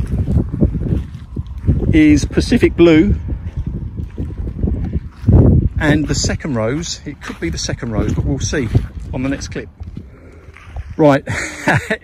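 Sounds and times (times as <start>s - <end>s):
wind buffeting microphone: 0.0s - 12.0s
man's voice: 5.8s - 9.7s.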